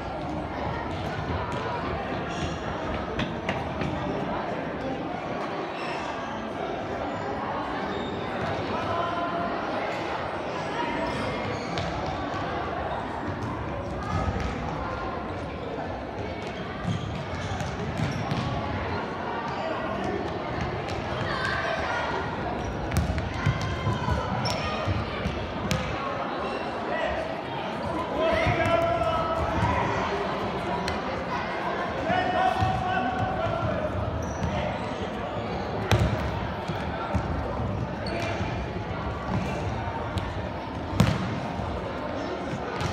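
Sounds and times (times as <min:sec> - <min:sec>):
loud ball impact: 0:40.9 - 0:41.4.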